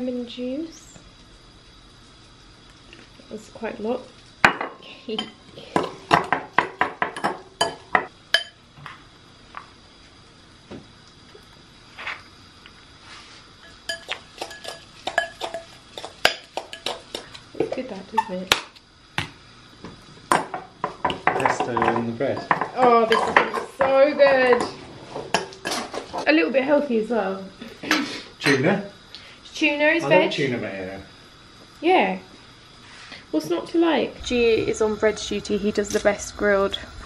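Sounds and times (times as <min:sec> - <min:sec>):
fork scraping glass bowl: 0:13.6 - 0:17.3.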